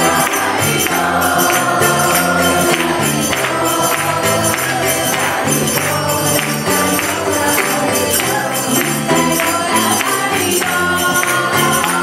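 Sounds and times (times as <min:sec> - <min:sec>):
electric bass: 0:00.0 - 0:12.0
group of voices singing: 0:00.0 - 0:12.0
jingling hand percussion: 0:00.0 - 0:12.0
strummed ukulele: 0:00.0 - 0:12.0
woman singing into microphone: 0:00.0 - 0:12.0.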